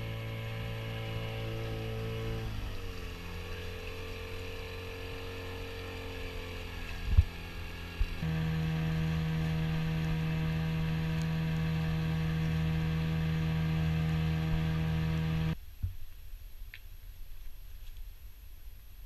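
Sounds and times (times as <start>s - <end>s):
engine drone with low hum: 0.0s - 15.6s
outboard motor running: 0.0s - 15.6s.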